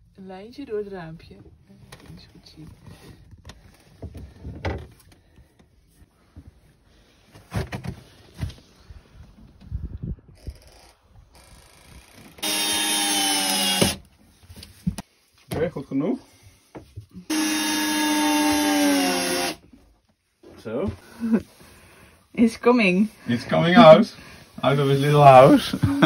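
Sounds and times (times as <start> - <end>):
knocks and bumps of handling: 3.4 - 5.2
power tool motor running: 11.4 - 14.0, 17.3 - 19.6.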